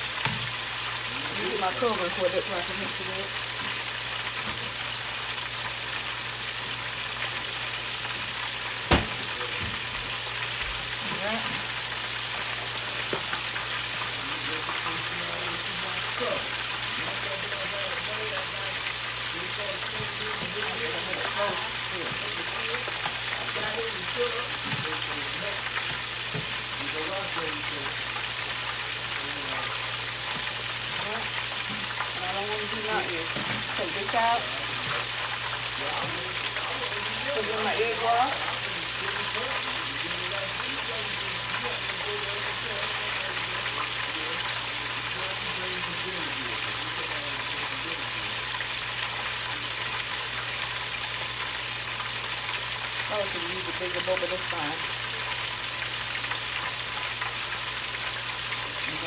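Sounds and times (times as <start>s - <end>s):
oil sizzling in deep fryer: 0.0s - 59.0s
sharp knock: 8.9s - 9.2s.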